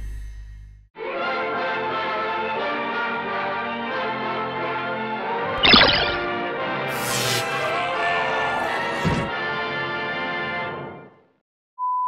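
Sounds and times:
music: 1.0 - 11.4.

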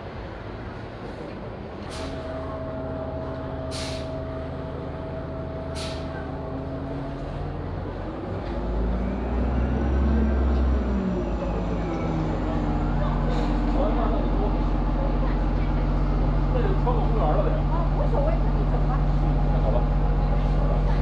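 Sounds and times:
bus idling with whine: 0.0 - 21.0
bus pulling off and passing: 0.0 - 21.0
short air hisses: 3.7 - 4.1, 5.8 - 6.1.

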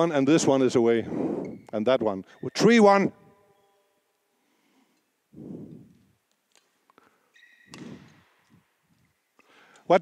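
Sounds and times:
shoe squeak: 1.4 - 4.0, 7.3 - 8.2
racket hitting shuttlecock: 7.4 - 8.5.

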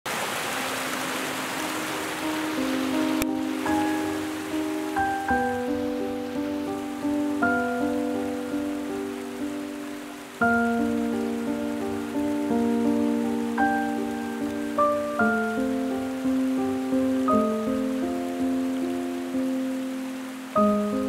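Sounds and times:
rain-like hiss: 0.1 - 21.0
slow piano notes: 0.5 - 21.0.

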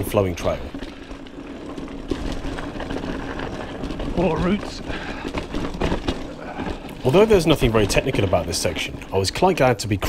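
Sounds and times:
bike tyres rumbling on dirt: 0.0 - 10.0.

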